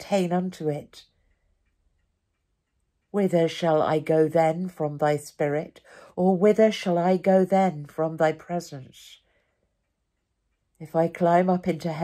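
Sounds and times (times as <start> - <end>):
clock ticking: 0.0 - 12.0.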